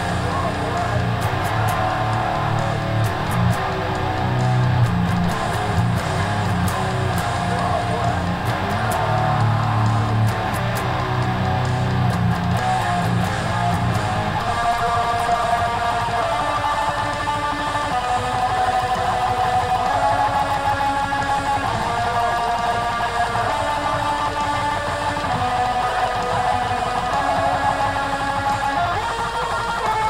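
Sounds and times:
electric guitar playing a riff: 0:00.0 - 0:30.0.

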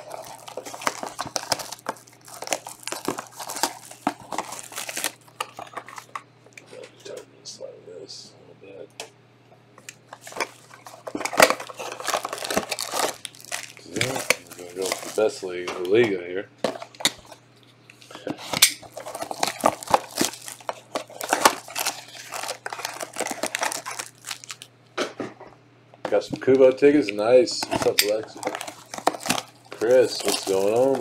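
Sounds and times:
plastic wrap crinkling and tearing: 0:00.0 - 0:06.2, 0:10.1 - 0:15.7, 0:18.0 - 0:24.7, 0:27.6 - 0:31.0.

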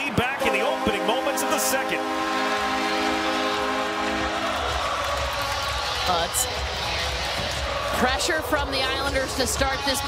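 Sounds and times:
crowd cheering: 0:00.0 - 0:10.0
arena goal horn: 0:00.4 - 0:04.8.

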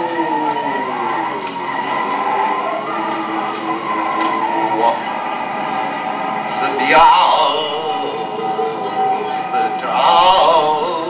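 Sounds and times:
man's voice sliding pitched sounds: 0:00.0 - 0:05.6, 0:06.2 - 0:11.0.

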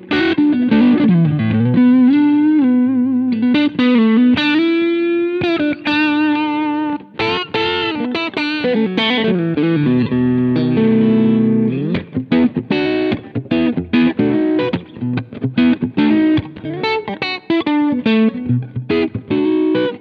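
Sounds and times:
overdriven electric guitar lead: 0:00.0 - 0:20.0.

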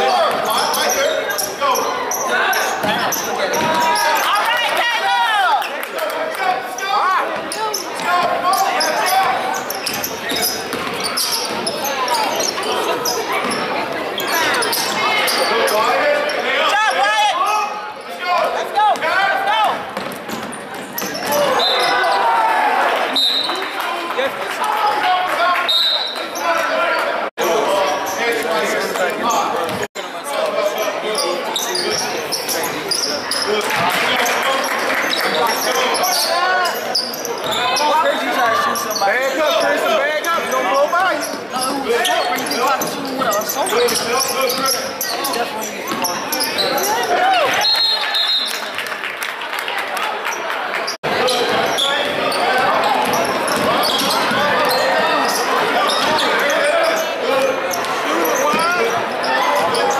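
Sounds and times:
sneaker squeaks: 0:00.0 - 0:04.3, 0:06.7 - 0:16.5, 0:19.8 - 0:22.3, 0:25.6 - 0:26.6, 0:27.6 - 0:48.7, 0:50.3 - 0:59.9
people shouting and talking: 0:00.0 - 0:59.9.

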